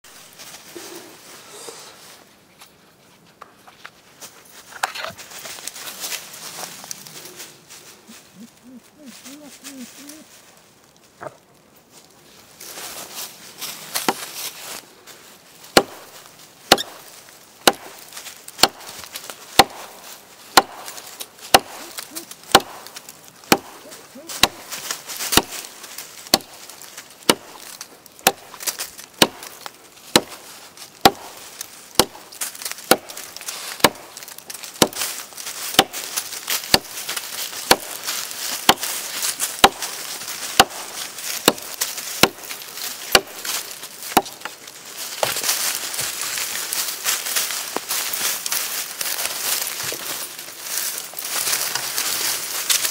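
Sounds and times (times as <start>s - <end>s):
knife chopping wood: 14.0s - 14.3s, 15.7s - 16.1s, 16.7s - 46.2s.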